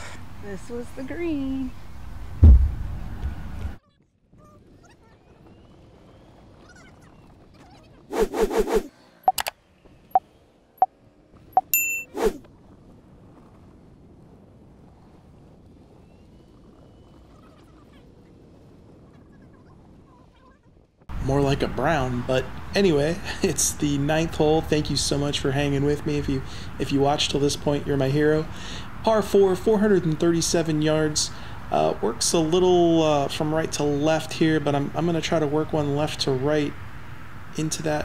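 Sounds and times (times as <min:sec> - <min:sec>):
loud low thump: 0:02.4 - 0:03.0
single clicks: 0:09.3 - 0:09.6
bell-like ding: 0:11.6 - 0:12.2.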